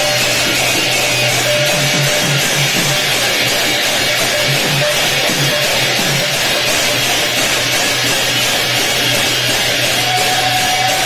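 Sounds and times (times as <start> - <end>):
barrel drum: 0.0 - 9.4
brass hand cymbals clashing: 0.0 - 11.0.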